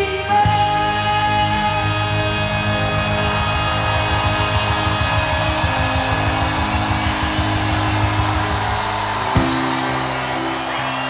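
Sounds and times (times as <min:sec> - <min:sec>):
drums and cymbals: 0:00.0 - 0:11.0.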